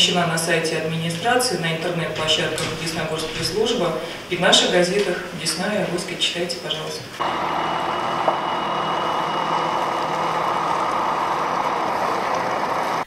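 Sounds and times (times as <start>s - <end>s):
bus engine running: 7.2s - 13.0s
faint high whine: 7.2s - 13.0s.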